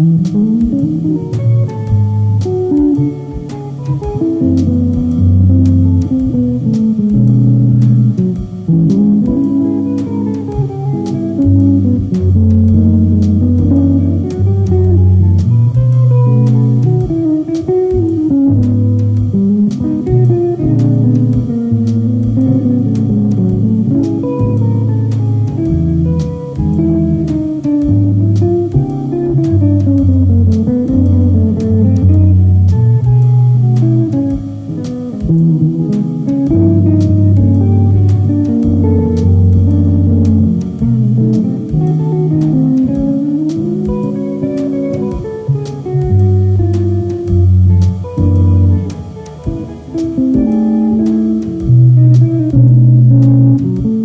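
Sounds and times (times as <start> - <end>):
electric jazz guitar playing: 0.0 - 54.0
low bass notes: 0.0 - 54.0.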